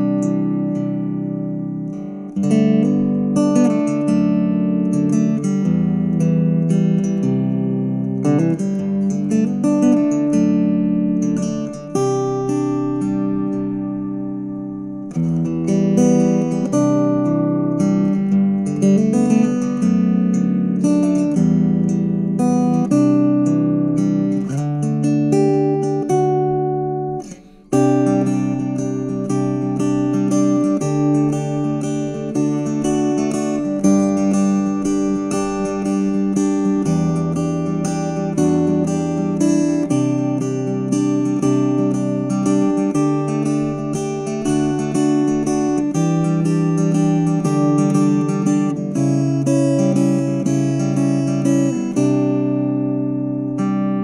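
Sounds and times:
fingerstyle guitar playing: 0.0s - 54.0s.

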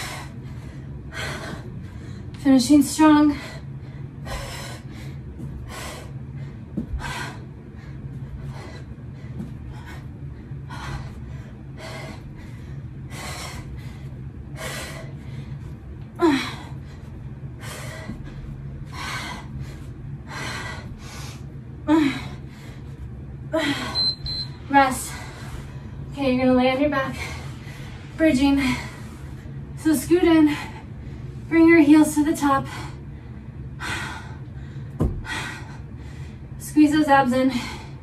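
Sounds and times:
woman breathing hard: 0.0s - 2.4s, 3.3s - 24.2s, 25.0s - 26.1s, 27.0s - 29.8s, 32.6s - 36.6s, 37.4s - 38.0s.

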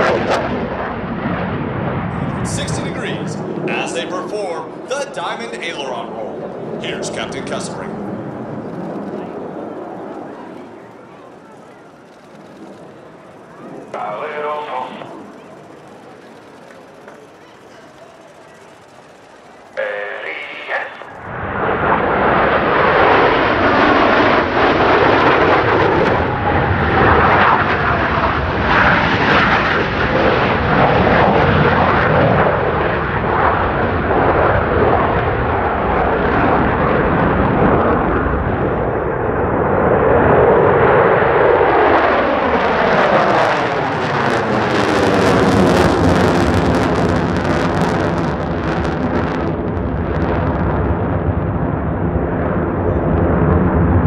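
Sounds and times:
jet engines roaring past: 0.0s - 54.0s.

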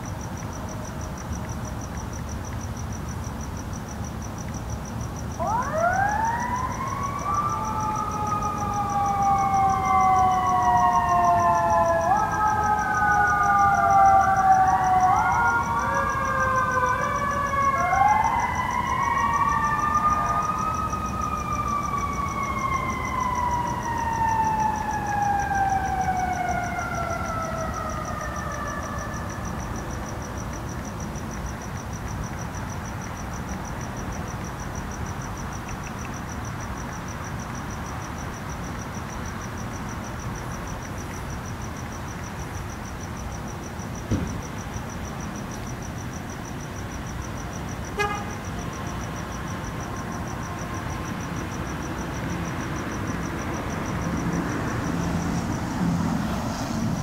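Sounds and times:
crickets chirping: 0.0s - 57.0s
emergency sirens wailing: 5.3s - 30.6s, 47.9s - 57.0s.

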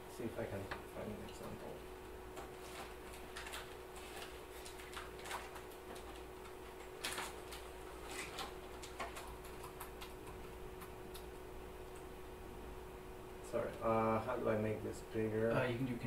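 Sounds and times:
faint hum: 0.0s - 16.0s.

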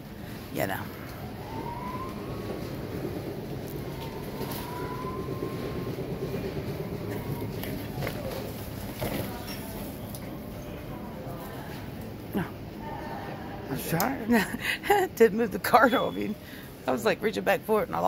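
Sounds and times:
shopping cart wheels rolling: 1.4s - 10.3s.

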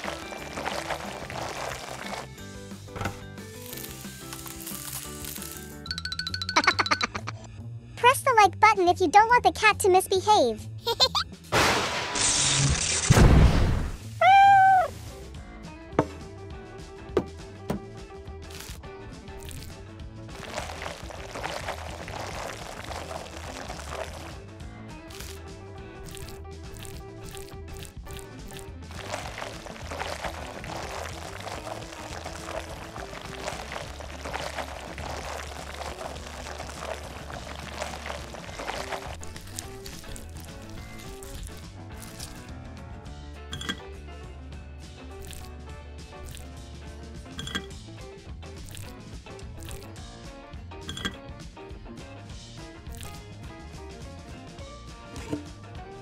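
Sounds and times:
light background music: 0.0s - 12.2s, 13.4s - 56.0s.

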